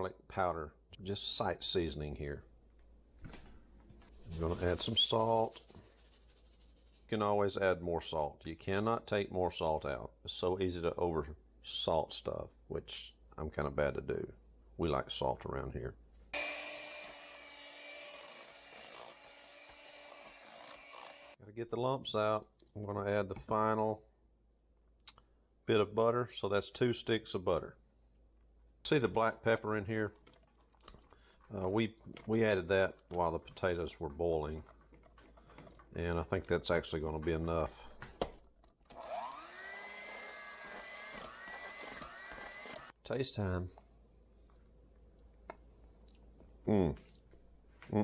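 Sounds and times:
electric hand mixer running: 16.4s - 21.4s, 39.0s - 42.9s.

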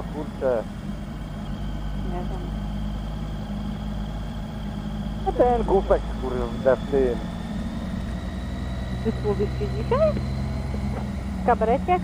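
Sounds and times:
faint high whine: 0.0s - 12.0s
motorcycle engine running: 0.0s - 12.0s.

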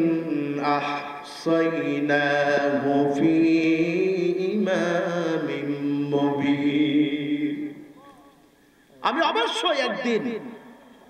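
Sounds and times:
man chanting melodic recitation: 9.0s - 10.8s.

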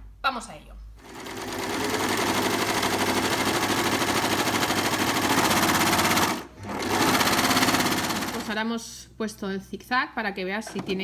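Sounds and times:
overlock sewing machine stitching: 1.0s - 8.6s.

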